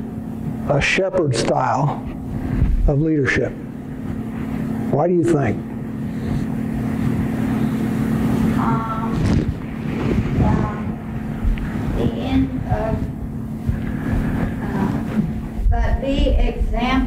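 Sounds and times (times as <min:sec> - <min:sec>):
low hum and room rumble: 0:00.0 - 0:17.0.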